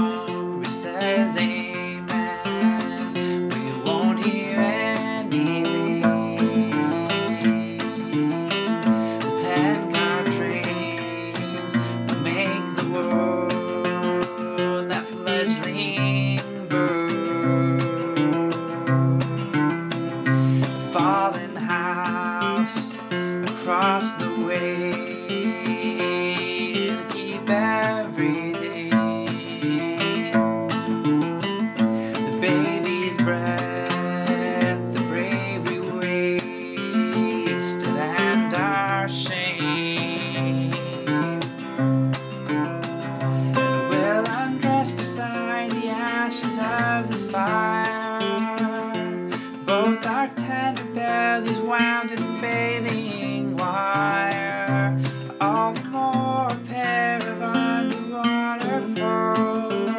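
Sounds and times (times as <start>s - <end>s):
acoustic guitar folk accompaniment: 0.0s - 59.9s
man singing: 0.0s - 59.9s.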